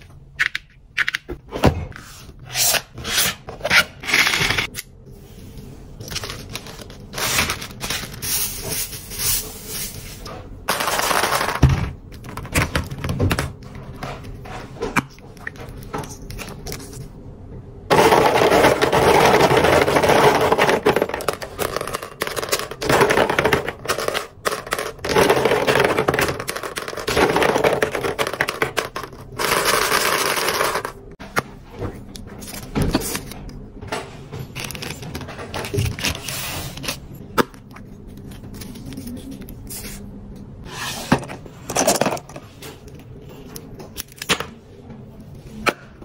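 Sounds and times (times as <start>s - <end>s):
plastic capsules clattering: 17.9s - 31.1s.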